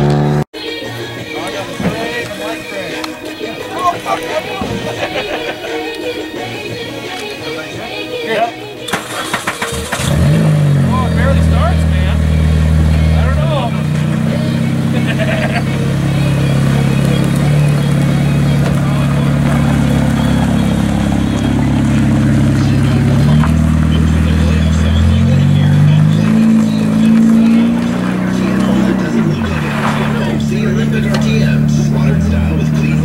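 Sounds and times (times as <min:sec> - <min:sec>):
car engine starting and idling: 0:08.8 - 0:33.0.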